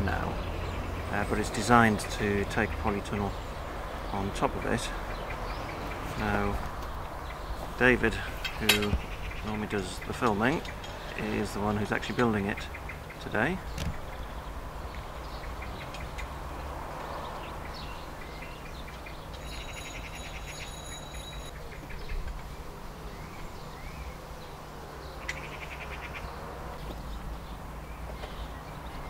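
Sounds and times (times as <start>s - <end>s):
bird chirps: 17.0s - 29.0s.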